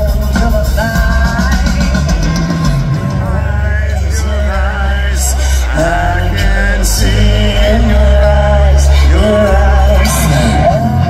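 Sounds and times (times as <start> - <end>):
woman singing: 0.0 - 4.8
live rock band playing: 0.0 - 11.0.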